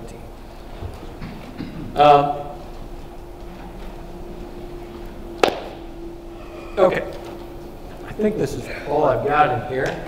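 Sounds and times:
low room hum: 0.0 - 10.0
sharp knock: 5.4 - 5.8.

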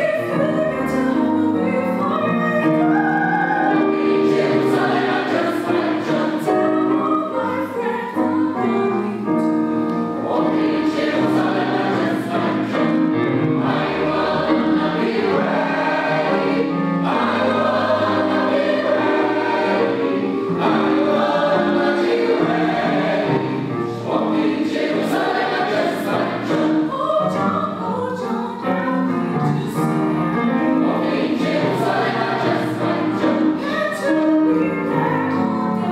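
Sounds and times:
choir singing: 0.9 - 9.3, 10.0 - 28.7, 29.4 - 35.9.

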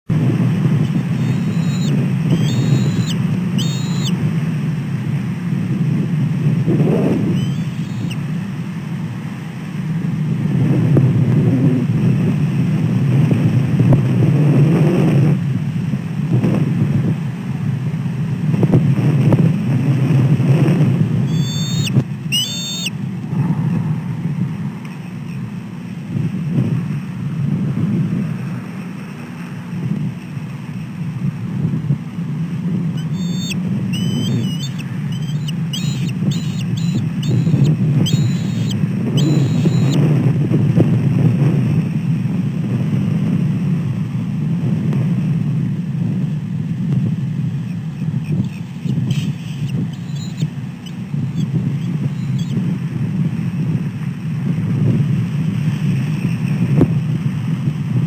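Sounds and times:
wind buffeting microphone: 0.1 - 58.0
eagle calling: 0.7 - 4.2, 7.0 - 8.4, 21.2 - 23.8, 32.9 - 40.0, 48.0 - 52.7.

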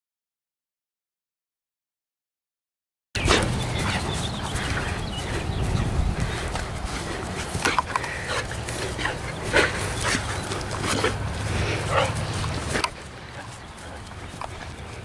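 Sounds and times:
dog vocalizing: 3.2 - 15.0.

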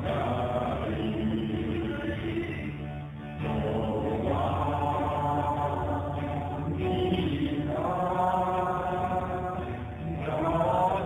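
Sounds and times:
voices singing worship song: 0.0 - 11.0.

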